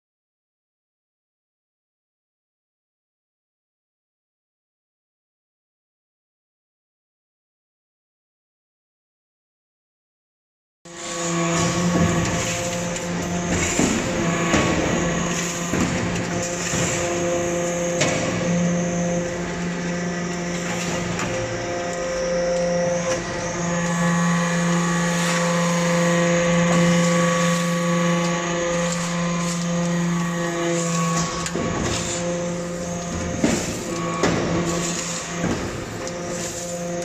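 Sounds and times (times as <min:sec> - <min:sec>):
machine hum: 0:10.9 - 0:37.0.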